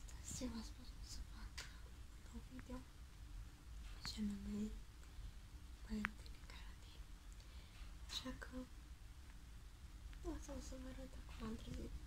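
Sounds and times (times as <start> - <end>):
girl whispering: 0.0 - 2.9, 4.0 - 4.8, 5.8 - 7.0, 8.1 - 8.7, 10.2 - 12.0.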